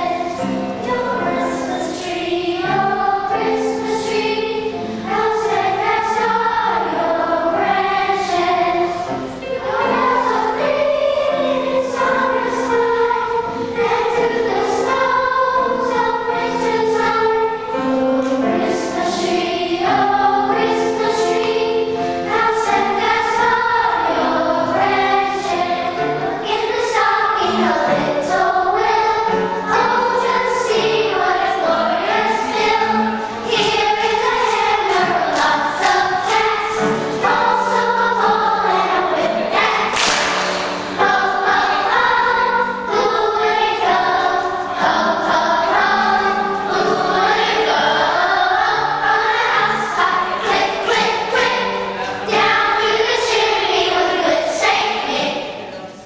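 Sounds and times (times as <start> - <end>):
children's choir singing: 0.0 - 56.0.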